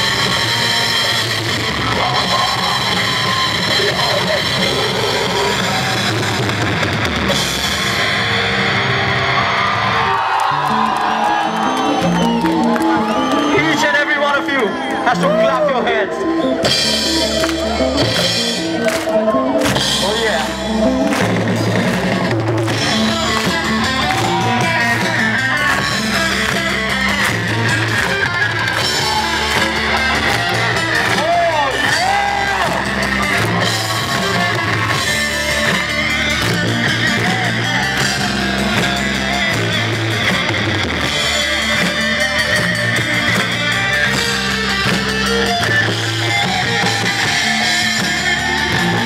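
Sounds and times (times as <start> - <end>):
electric guitar riff: 0.0 - 49.0
live band playing loudly: 0.0 - 49.0.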